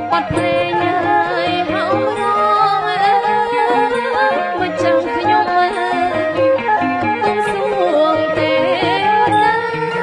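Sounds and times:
traditional instrumental ensemble: 0:00.0 - 0:10.0
woman singing into microphone: 0:00.0 - 0:10.0.

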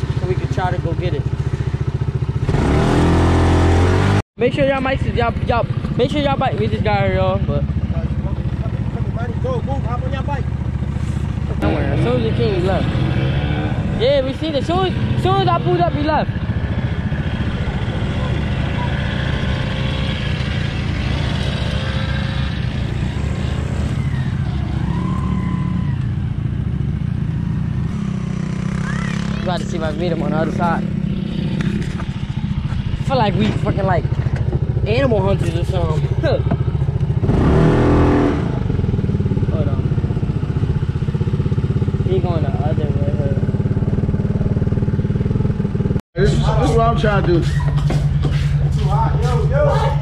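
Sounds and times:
off-road vehicle engine accelerating: 0:00.0 - 0:50.0.

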